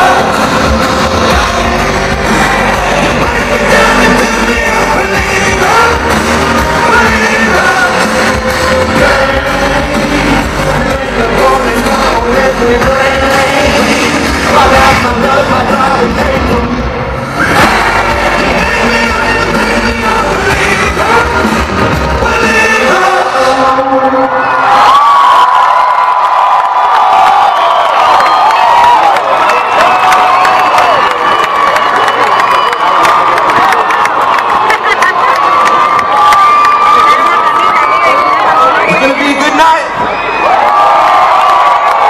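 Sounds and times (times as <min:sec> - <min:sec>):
live rock band playing: 0:00.0 - 0:16.7
crowd cheering and screaming: 0:00.0 - 0:42.0.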